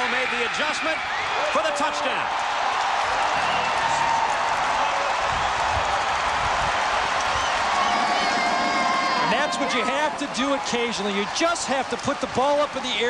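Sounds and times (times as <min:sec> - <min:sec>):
stadium crowd cheering and applauding: 0:00.0 - 0:13.0.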